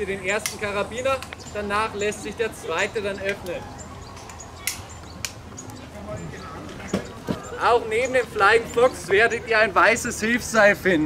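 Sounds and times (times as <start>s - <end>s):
sharp clicks: 0.4s - 1.4s, 4.2s - 5.8s.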